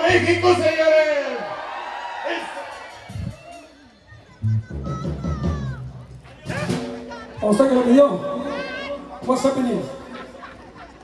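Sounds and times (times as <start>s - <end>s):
live band playing: 0.0s - 1.2s, 2.4s - 11.0s
crowd noise: 0.0s - 11.0s.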